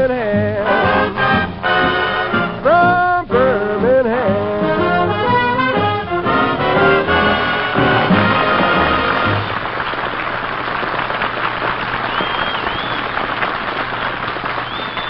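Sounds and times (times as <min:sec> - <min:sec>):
swing orchestra with brass: 0:00.2 - 0:09.7
audience applauding: 0:06.8 - 0:15.0.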